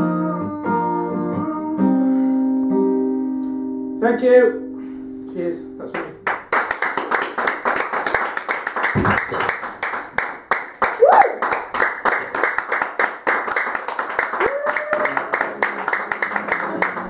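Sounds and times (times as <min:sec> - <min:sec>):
audience applauding: 0:06.0 - 0:17.0.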